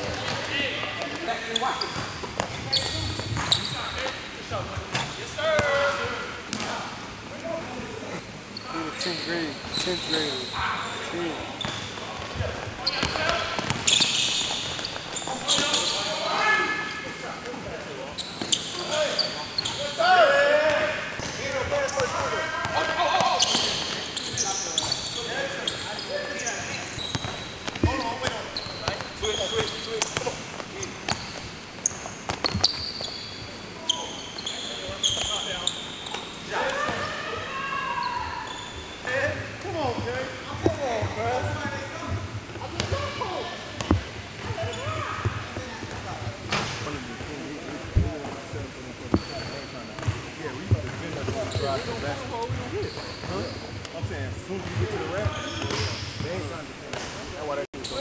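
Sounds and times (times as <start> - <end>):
basketballs bouncing on gym floor: 0.0 - 3.9, 11.6 - 16.0, 26.4 - 33.2, 39.5 - 48.4, 49.1 - 53.4, 54.0 - 57.1
players' voices and calls: 0.0 - 58.0.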